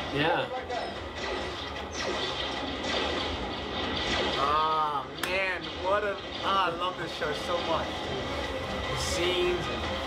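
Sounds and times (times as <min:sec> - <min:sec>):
faint music: 0:00.0 - 0:10.0
tv steady rumbling noise: 0:00.0 - 0:10.0.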